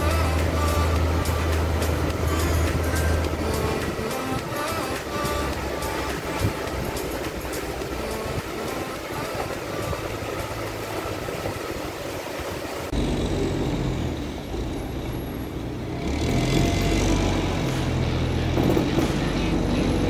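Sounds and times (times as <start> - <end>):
even rushing noise: 0.0 - 15.0
truck diesel engine droning: 0.0 - 20.0.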